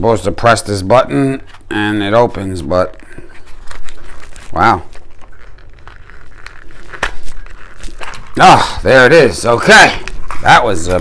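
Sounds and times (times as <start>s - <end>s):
faint rustling: 1.3s - 11.0s.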